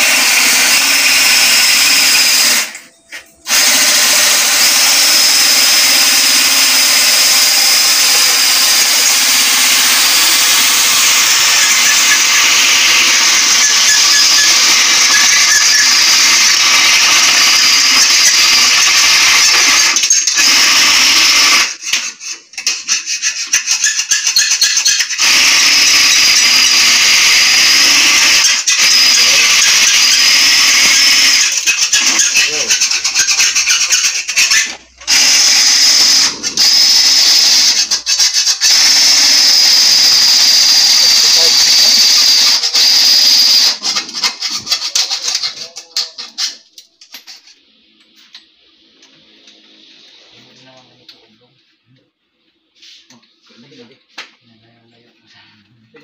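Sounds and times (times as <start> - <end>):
power drill whining: 0.0 - 46.6.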